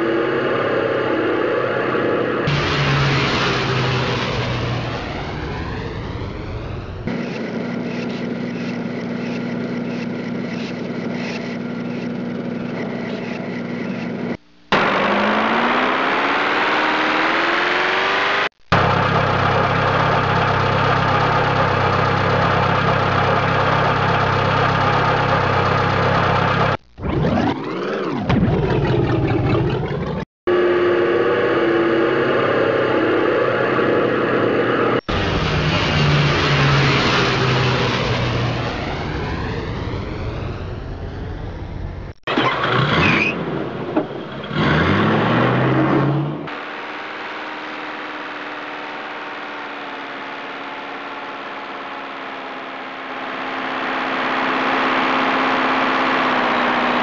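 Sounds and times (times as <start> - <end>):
engine running and revving: 0.0 - 57.0.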